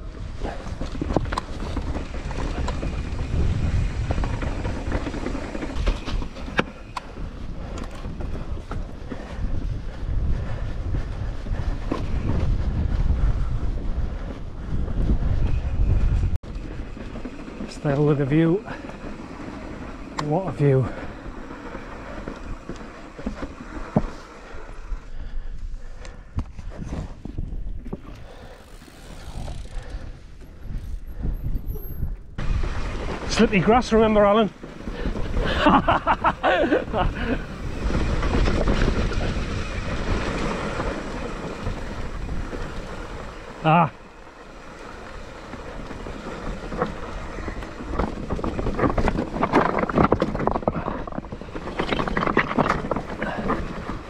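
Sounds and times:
mountain bike rolling: 0:00.0 - 0:54.0
wind buffeting microphone: 0:00.0 - 0:54.0.

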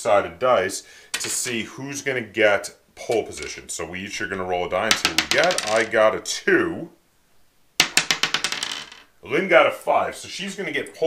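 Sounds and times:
die rattling on wooden table: 0:04.9 - 0:05.9, 0:07.8 - 0:09.1.

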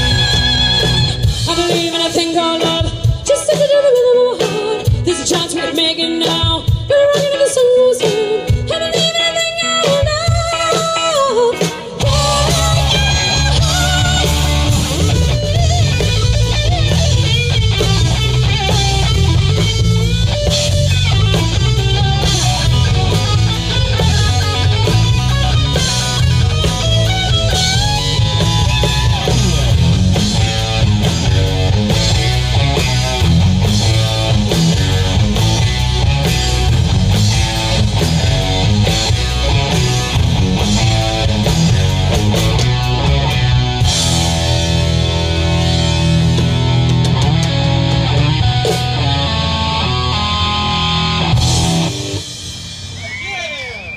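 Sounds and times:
electric guitar: 0:00.0 - 0:53.9
rock band playing: 0:00.0 - 0:53.9.

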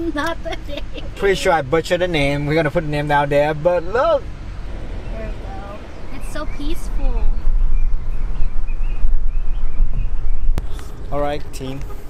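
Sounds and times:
moving car rumble: 0:00.0 - 0:12.0
wind on microphone: 0:04.6 - 0:11.1.

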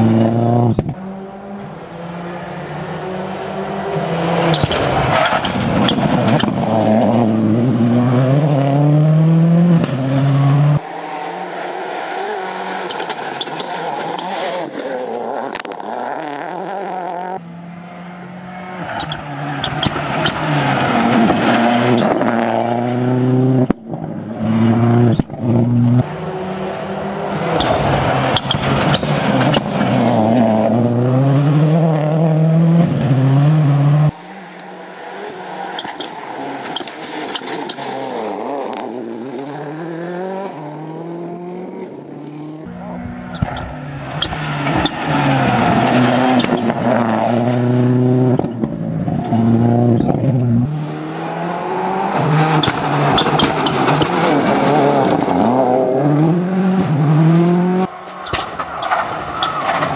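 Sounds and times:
rally car engine revving: 0:00.0 - 0:59.9.

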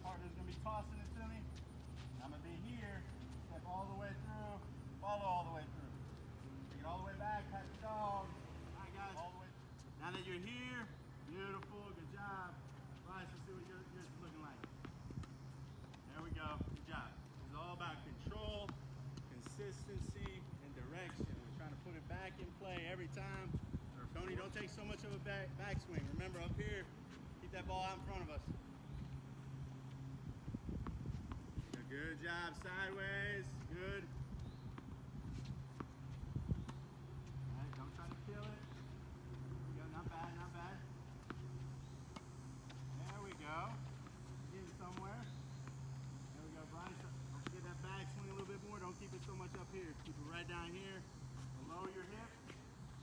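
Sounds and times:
low steady hum: 0:00.0 - 0:53.0
people talking: 0:06.8 - 0:14.7, 0:16.1 - 0:18.7, 0:19.3 - 0:28.5, 0:37.5 - 0:38.7, 0:39.7 - 0:40.9, 0:44.5 - 0:45.3, 0:46.4 - 0:52.5.

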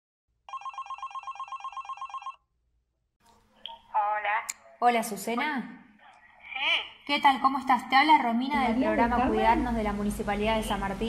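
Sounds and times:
electronic telephone trilling ring: 0:00.5 - 0:02.4.

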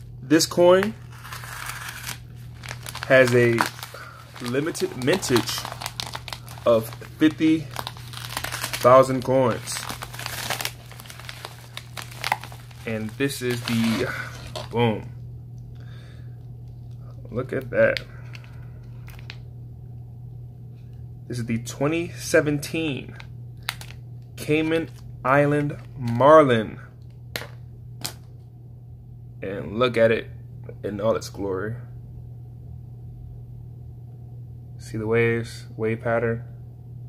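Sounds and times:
bubble wrap and mailer crinkling: 0:00.4 - 0:15.1, 0:17.9 - 0:19.4, 0:23.6 - 0:25.0.

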